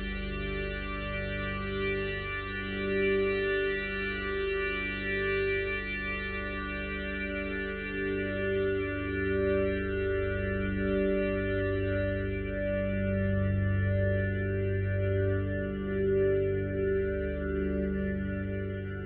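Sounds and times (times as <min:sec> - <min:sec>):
electric guitar with echo: 0:00.0 - 0:19.0
low bass: 0:00.0 - 0:19.0.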